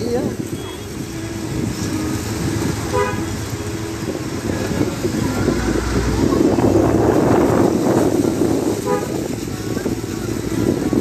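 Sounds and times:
water rushing: 0:00.0 - 0:11.0.

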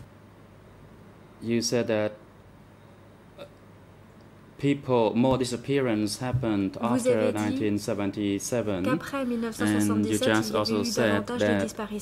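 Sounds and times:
low microphone hum: 0:00.0 - 0:12.0
spoken word: 0:06.8 - 0:07.7.

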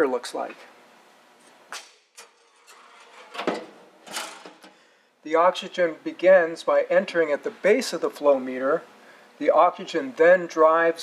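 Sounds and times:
metal door clunks: 0:03.1 - 0:04.8.

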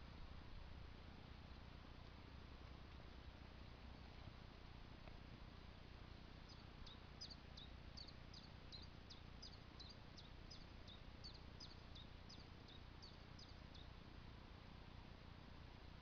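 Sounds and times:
small bird chirping: 0:06.4 - 0:14.0.

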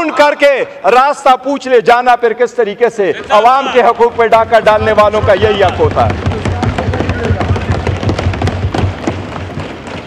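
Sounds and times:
hands thumping on wooden desks: 0:04.4 - 0:10.0.

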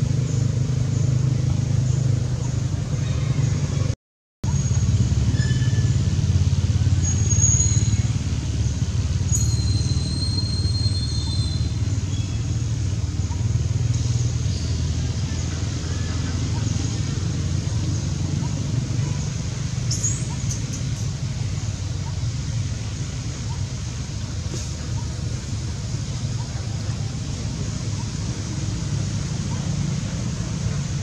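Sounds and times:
low outdoor rumble: 0:00.0 - 0:31.0.

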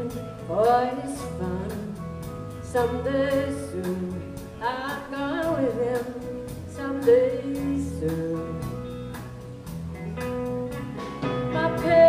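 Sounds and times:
country band playing: 0:00.0 - 0:12.0
guitars strumming: 0:00.0 - 0:12.0.

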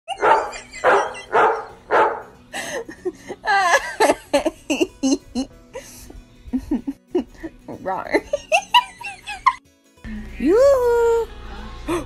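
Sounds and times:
dog barking: 0:00.1 - 0:02.4.

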